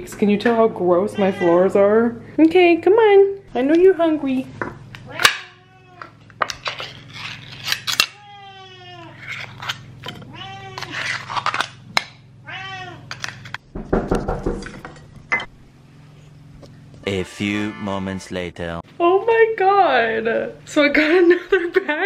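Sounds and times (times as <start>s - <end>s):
cats meowing: 1.0s - 1.9s, 5.0s - 6.9s, 7.9s - 11.3s, 12.4s - 13.2s
spoon scraping a metal bowl: 6.4s - 8.1s, 9.1s - 11.7s
rustling and knocks: 13.1s - 15.5s.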